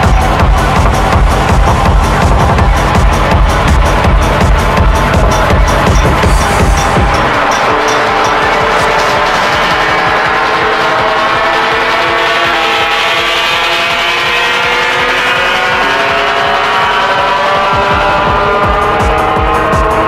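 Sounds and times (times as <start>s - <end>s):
distorted synth chord: 0.0s - 20.0s
driving kick drum: 0.0s - 20.0s.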